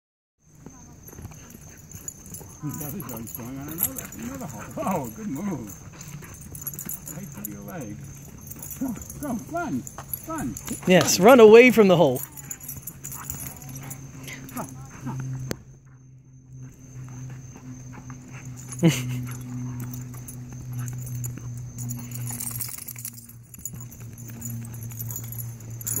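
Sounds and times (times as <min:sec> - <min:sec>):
dogs digging in dirt: 0:01.3 - 0:15.5, 0:16.6 - 0:26.0
faint voices: 0:02.3 - 0:15.4.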